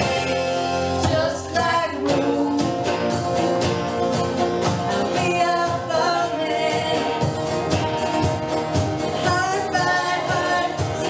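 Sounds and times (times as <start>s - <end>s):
women singing: 0.0s - 3.2s, 4.9s - 7.7s, 9.1s - 11.0s
acoustic guitar: 0.0s - 11.0s
drum kit beat: 0.0s - 11.0s
electric bass: 0.0s - 11.0s
electric guitar: 0.0s - 11.0s.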